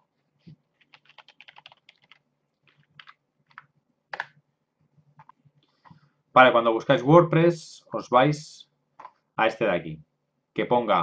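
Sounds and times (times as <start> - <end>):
typing on computer keyboard: 0.8 - 4.3.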